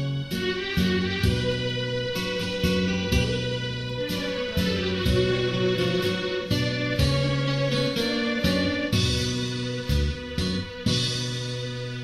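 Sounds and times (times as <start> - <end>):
plucked guitar notes: 0.0 - 12.0
sustained bass notes: 0.0 - 12.0.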